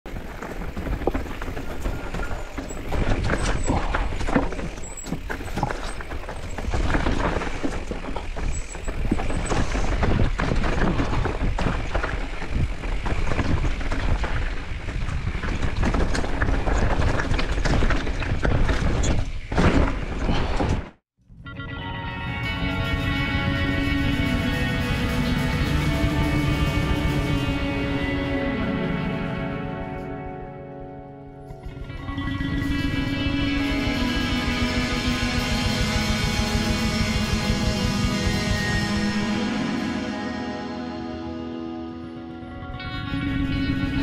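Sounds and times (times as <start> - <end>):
mountain bike rattling on rocks: 0.1 - 21.0
music: 21.2 - 44.0.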